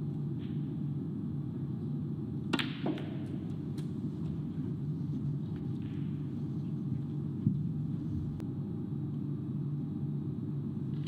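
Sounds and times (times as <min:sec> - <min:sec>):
low hum of hall: 0:00.0 - 0:11.0.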